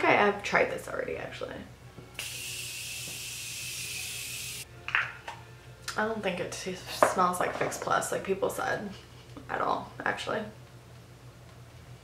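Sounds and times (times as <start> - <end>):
setting spray hissing: 2.1 - 4.7.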